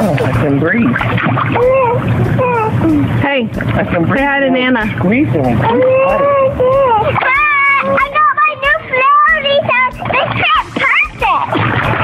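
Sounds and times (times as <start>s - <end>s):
child singing: 5.8s - 11.3s.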